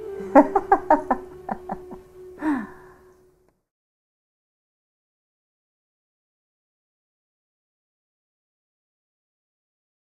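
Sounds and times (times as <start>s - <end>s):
woman laughing: 0.1s - 2.7s
woman sighing: 2.3s - 3.2s.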